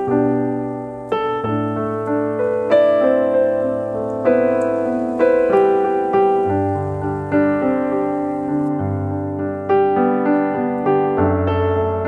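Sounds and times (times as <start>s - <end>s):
gentle piano piece: 0.0s - 12.0s.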